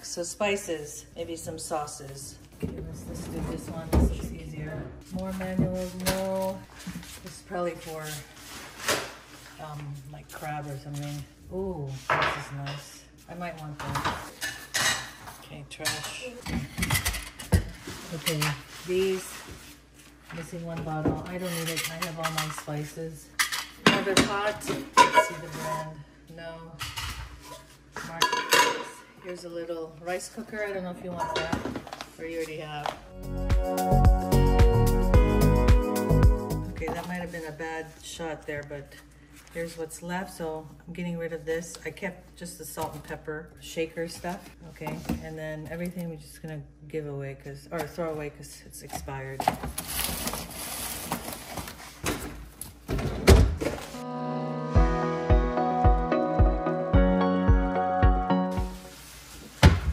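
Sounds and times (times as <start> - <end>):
background music with beat: 33.1 - 36.8, 54.0 - 58.9.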